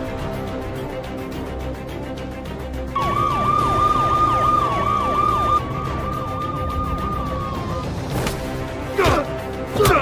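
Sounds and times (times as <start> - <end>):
background music: 0.0 - 10.0
police siren yelping: 3.0 - 8.0.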